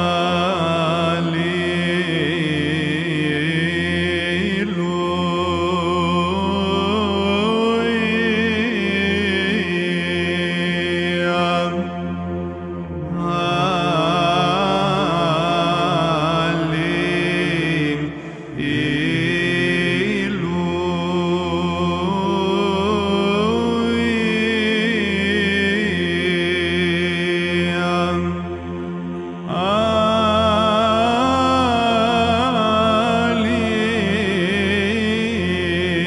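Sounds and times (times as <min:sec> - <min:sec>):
low held vocal drone: 0:00.0 - 0:36.0
voices chanting a melody: 0:13.1 - 0:22.8.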